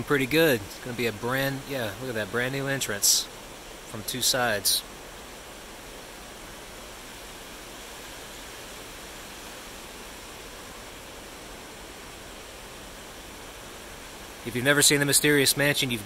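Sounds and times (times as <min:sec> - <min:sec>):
outdoor background hiss: 0:00.0 - 0:16.0.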